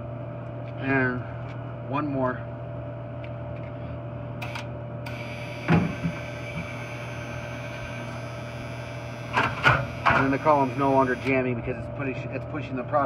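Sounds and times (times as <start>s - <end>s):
machine hum: 0.0s - 13.0s
vend motor whine: 0.0s - 13.0s.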